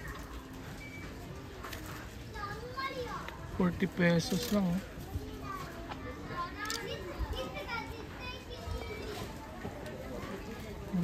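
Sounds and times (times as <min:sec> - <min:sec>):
faint chatter of shoppers: 0:00.0 - 0:11.0
children's voices: 0:02.2 - 0:03.5, 0:05.0 - 0:09.6.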